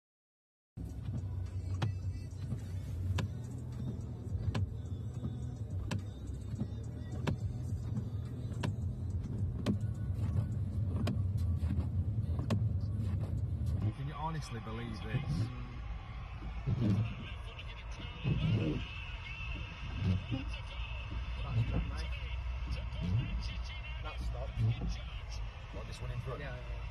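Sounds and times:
engine and road rumble: 0:00.8 - 0:26.9.

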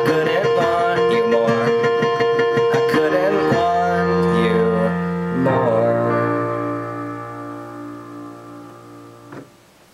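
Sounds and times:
digital piano chord: 0:00.0 - 0:09.6.

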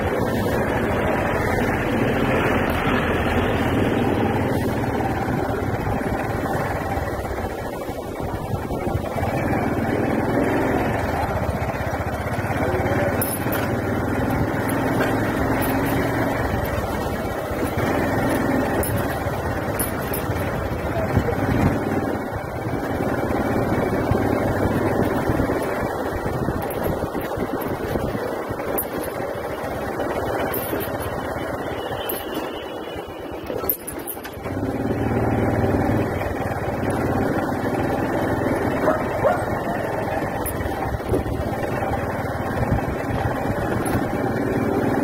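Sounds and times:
road noise: 0:00.0 - 0:45.0
vehicle engine rumble: 0:00.0 - 0:45.0.

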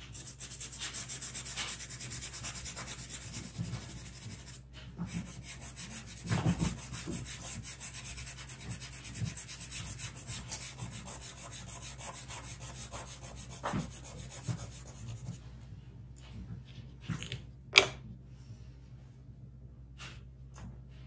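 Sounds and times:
charcoal scratching on paper: 0:00.0 - 0:15.4.

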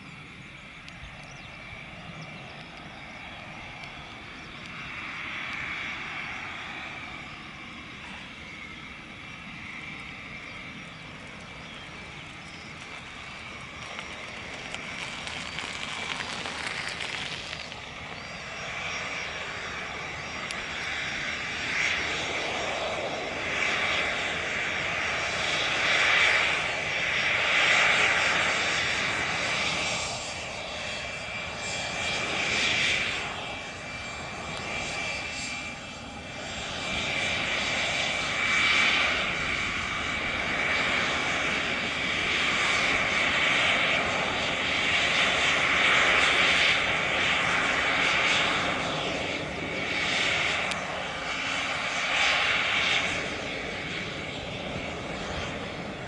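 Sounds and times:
jet engines whining at taxi power: 0:00.0 - 0:56.0
rushing hiss: 0:12.8 - 0:18.3.

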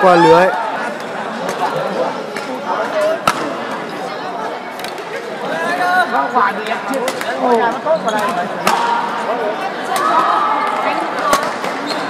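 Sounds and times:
indistinct chatter of many voices: 0:00.0 - 0:12.0.

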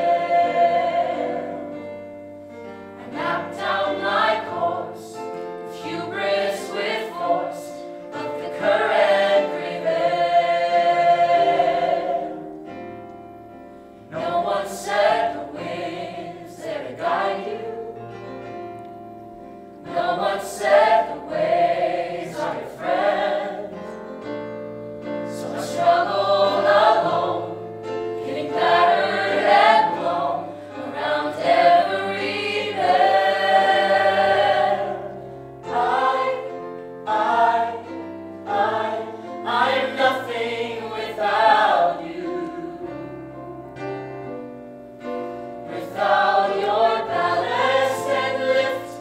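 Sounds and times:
musical theatre cast singing: 0:00.0 - 0:19.0, 0:19.8 - 0:49.0.

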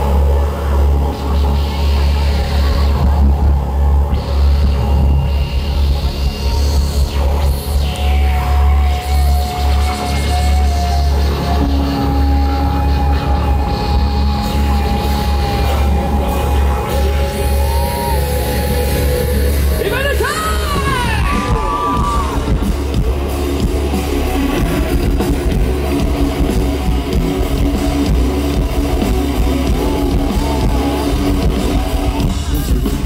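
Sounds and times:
live rock band playing: 0:00.0 - 0:33.0.

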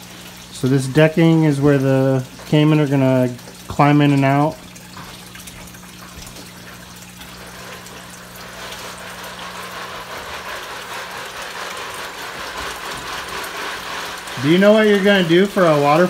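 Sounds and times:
waterfall splashing into pond: 0:00.0 - 0:16.0.

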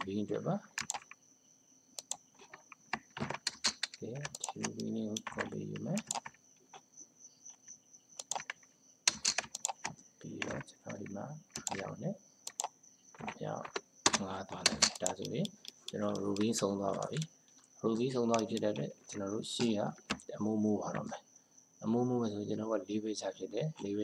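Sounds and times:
person speaking: 0:00.0 - 0:01.0, 0:03.2 - 0:06.4, 0:09.1 - 0:24.0
keyboard typing: 0:00.0 - 0:01.2, 0:02.0 - 0:06.8, 0:07.5 - 0:21.2
mouse clicks: 0:02.0 - 0:02.6, 0:09.1 - 0:13.4.

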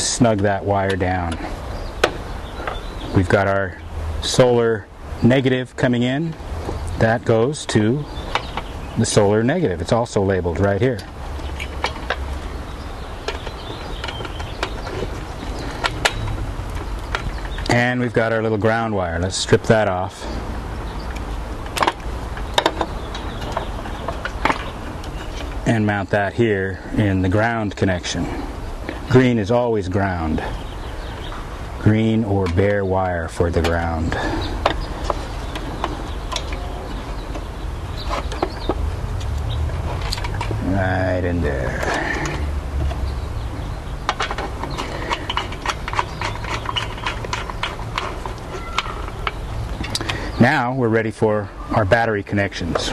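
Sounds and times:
steady low rumble: 0:00.0 - 0:45.8.

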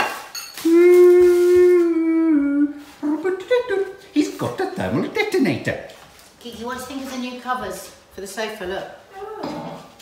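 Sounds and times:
person humming: 0:00.6 - 0:04.0.

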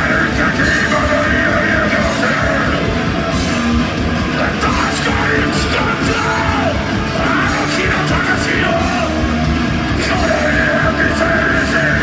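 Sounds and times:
distorted electric guitars: 0:00.0 - 0:12.0
drums: 0:00.0 - 0:12.0
vocalist yelling: 0:04.4 - 0:09.2.

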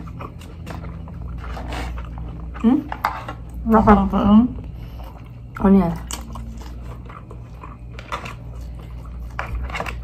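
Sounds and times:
light chewing: 0:00.0 - 0:03.6, 0:04.6 - 0:10.0
steady low hum: 0:00.0 - 0:10.0.

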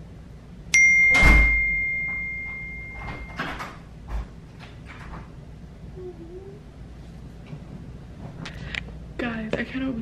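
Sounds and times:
bright chime ringing: 0:00.8 - 0:03.6.

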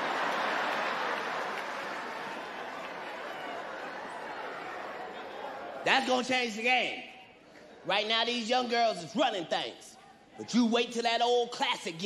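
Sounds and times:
audience applause: 0:00.0 - 0:05.8
crowd laughter: 0:00.0 - 0:05.9.

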